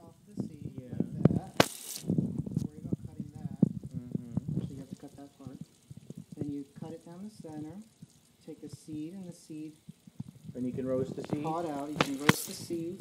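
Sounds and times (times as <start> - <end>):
tap water running: 0.4 - 13.0.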